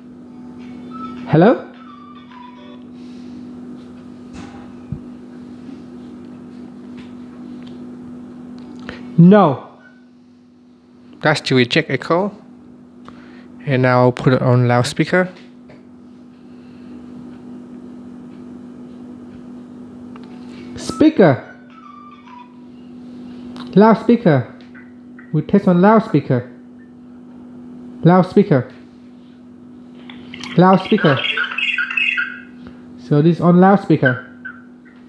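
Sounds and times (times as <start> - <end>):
steady low hum: 0.0 - 35.0
garbled phone speaker audio: 30.1 - 32.7, 33.5 - 35.0.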